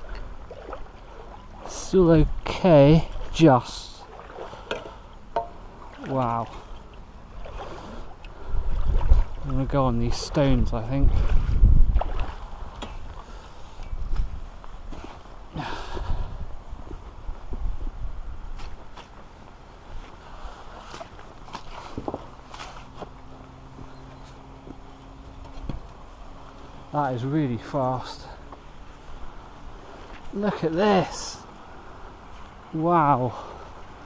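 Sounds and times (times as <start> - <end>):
light water splashes: 0.0 - 17.1, 18.5 - 34.0
low steady hum: 0.0 - 34.0.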